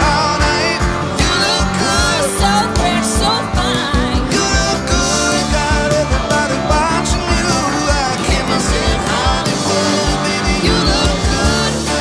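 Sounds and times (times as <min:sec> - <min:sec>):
acoustic and electric guitars: 0:00.0 - 0:12.0
person singing lead vocal: 0:00.0 - 0:12.0.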